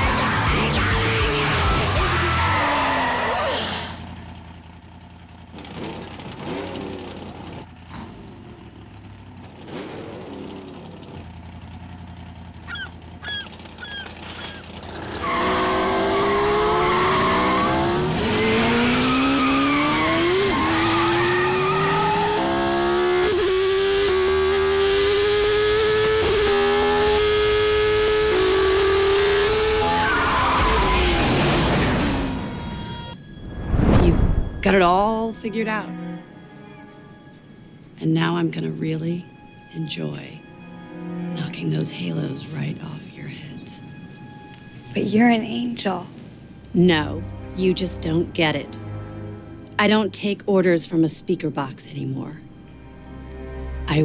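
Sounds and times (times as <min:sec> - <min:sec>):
race car engine accelerating: 0:00.0 - 0:32.8.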